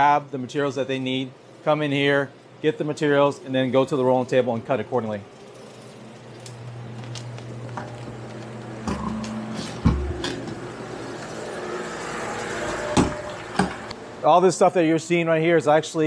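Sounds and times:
factory machinery hum: 0:03.4 - 0:16.0.

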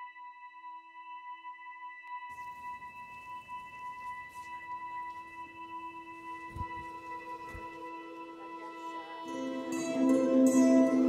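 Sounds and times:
sustained ringing tone: 0:02.3 - 0:11.0.

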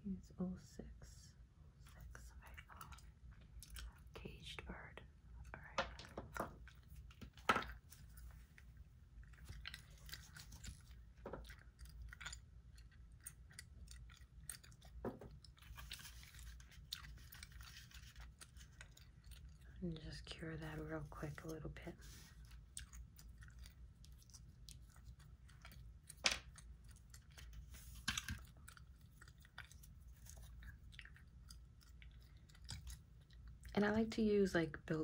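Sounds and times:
gum chewing: 0:02.5 - 0:04.2, 0:06.3 - 0:19.8, 0:22.1 - 0:33.8.

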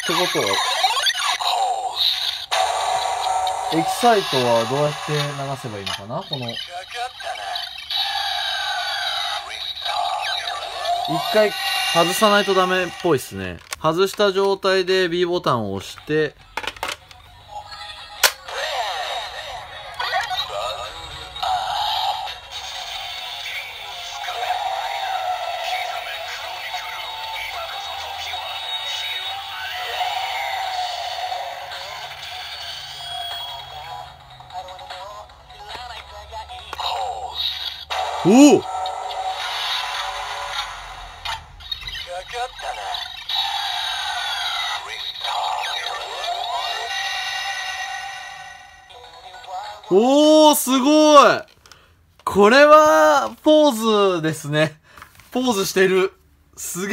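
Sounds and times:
synthesized vocal music: 0:00.0 - 0:13.2, 0:17.4 - 0:41.2, 0:41.8 - 0:50.0
electronic toy sound effects: 0:00.0 - 0:14.5, 0:15.9 - 0:50.5
toy button click: 0:18.2 - 0:18.5.

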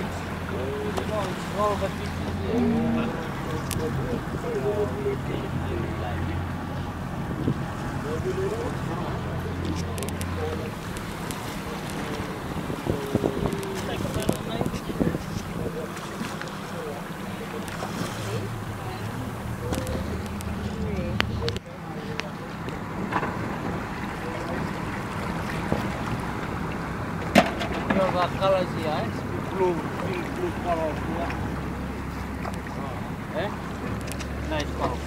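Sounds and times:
water rushing alongside boat: 0:00.0 - 0:35.0
wind buffeting microphone: 0:01.1 - 0:21.6.

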